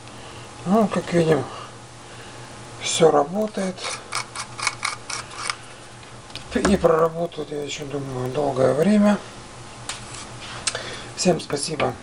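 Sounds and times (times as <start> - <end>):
bulb clicking and scraping in socket: 3.8 - 5.6.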